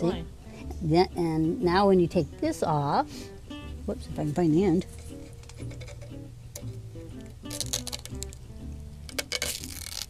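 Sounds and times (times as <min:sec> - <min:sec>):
background music: 0:00.0 - 0:10.0
tape peeling off wood: 0:07.5 - 0:08.4, 0:09.1 - 0:10.0.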